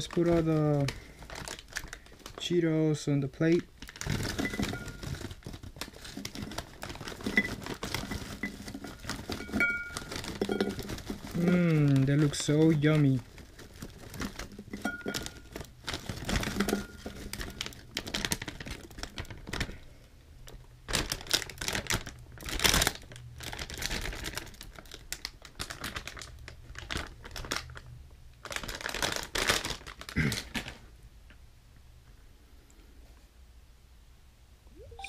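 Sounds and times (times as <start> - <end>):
plastic snack bag crinkling: 0.0 - 30.9.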